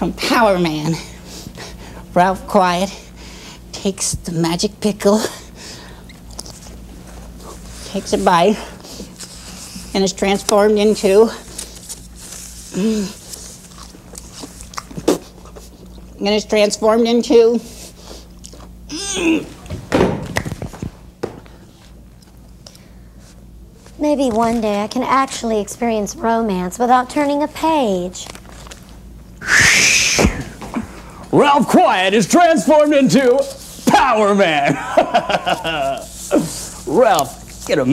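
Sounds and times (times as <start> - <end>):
person chewing: 13.3 - 16.2, 18.2 - 18.8
hissing whoosh: 29.4 - 30.4.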